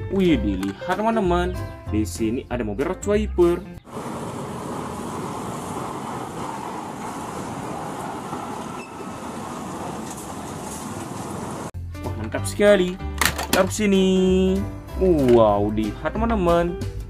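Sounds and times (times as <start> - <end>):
road noise: 3.6 - 11.8
traffic: 3.8 - 11.8
truck diesel engine running: 3.9 - 11.7.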